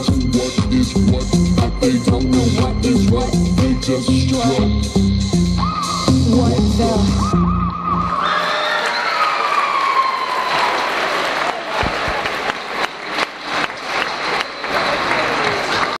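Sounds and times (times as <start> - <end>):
children cheering: 5.6 - 6.1, 7.2 - 16.0
clapping: 9.5 - 16.0.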